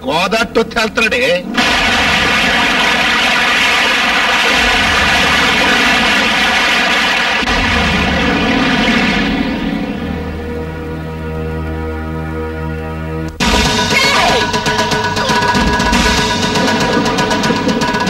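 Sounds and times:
heavy rain pouring: 0:00.0 - 0:11.8, 0:13.4 - 0:18.0.

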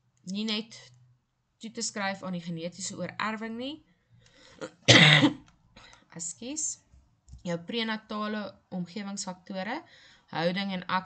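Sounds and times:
person coughing: 0:04.6 - 0:05.4.

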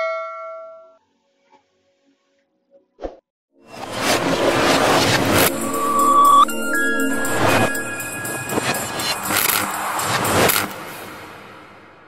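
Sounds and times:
noisy whooshing sweeps: 0:03.6 - 0:12.0.

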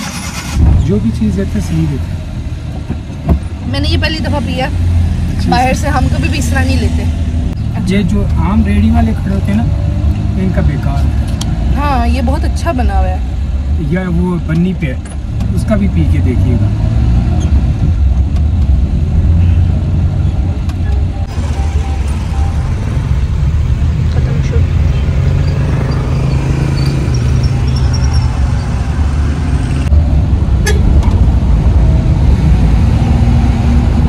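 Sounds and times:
vehicle cabin engine rumble: 0:00.0 - 0:25.5, 0:26.2 - 0:34.0.

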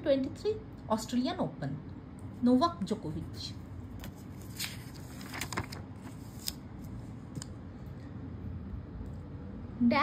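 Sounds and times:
paper pages turning: 0:03.9 - 0:07.5
crisp paper ticks: 0:04.6 - 0:05.8.

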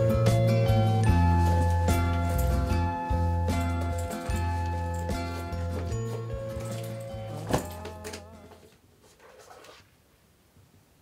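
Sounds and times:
book pages rustling: 0:01.0 - 0:02.8, 0:03.7 - 0:10.0.

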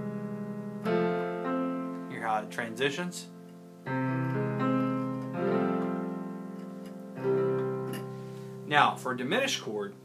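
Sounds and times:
electronic keyboard piano chords: 0:00.0 - 0:10.0.

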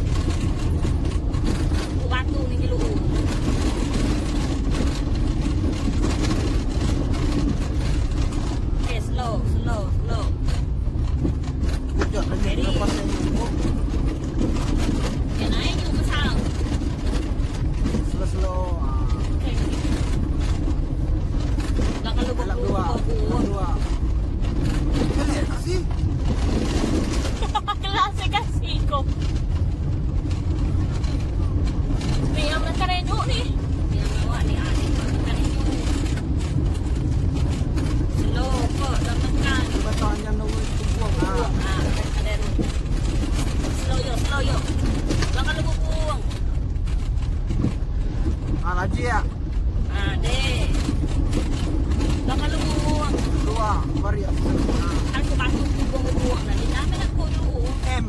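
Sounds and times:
car driving on gravel: 0:00.0 - 0:58.0.

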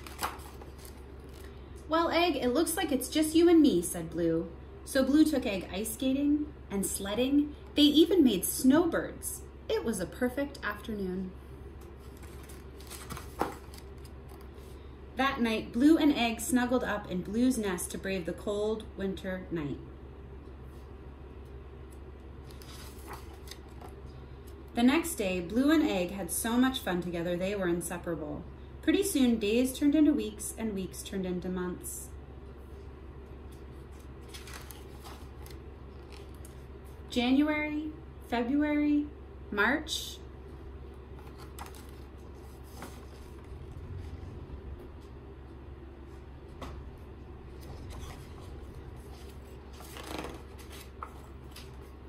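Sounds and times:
book page turning: 0:00.0 - 0:01.6, 0:11.9 - 0:14.8, 0:22.4 - 0:24.0, 0:33.5 - 0:37.0, 0:41.2 - 0:43.5, 0:47.5 - 0:52.0
faint low hum: 0:00.0 - 0:52.0.

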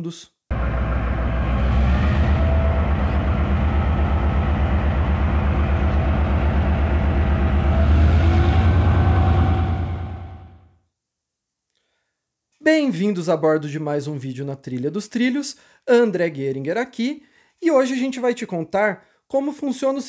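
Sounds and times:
diesel locomotive engine rumbling: 0:00.5 - 0:10.7.

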